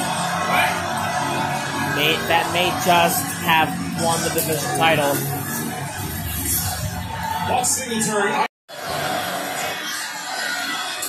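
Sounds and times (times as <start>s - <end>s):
music from television: 0.0s - 11.0s.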